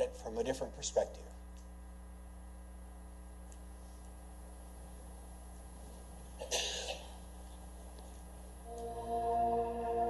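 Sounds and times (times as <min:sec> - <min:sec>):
steady low hum: 0:00.0 - 0:10.0
person coughing: 0:06.4 - 0:07.2.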